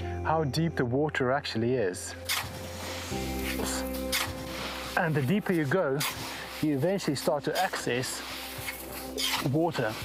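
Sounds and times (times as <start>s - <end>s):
soft background music: 0.0s - 10.0s
spade scraping into dry sand: 2.2s - 10.0s.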